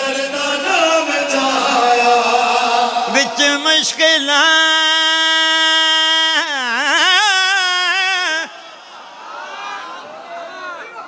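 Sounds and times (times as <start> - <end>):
man singing long high note: 0.0 - 8.7.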